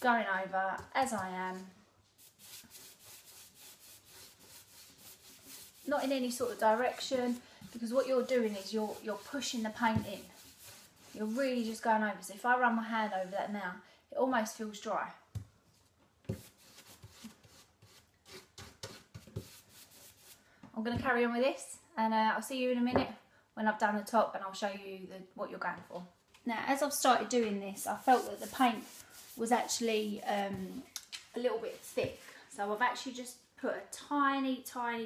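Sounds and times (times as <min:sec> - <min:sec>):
paintbrush scrubbing on wood: 0:02.2 - 0:11.9, 0:27.8 - 0:30.9, 0:31.5 - 0:32.3.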